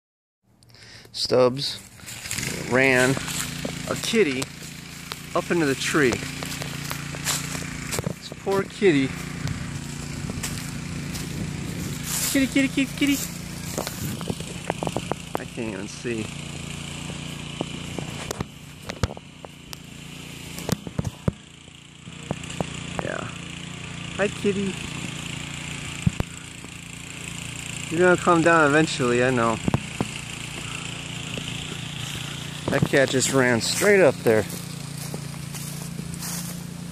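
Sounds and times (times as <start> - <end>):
outdoor background hum: 0.4 - 36.9
engine droning steadily: 0.5 - 36.9.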